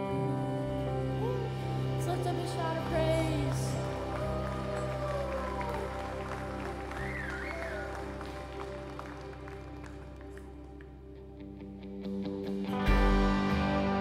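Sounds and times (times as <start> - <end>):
woman singing: 0.0 - 4.2
keyboard pad chords: 0.0 - 14.0
people clapping: 2.5 - 11.2.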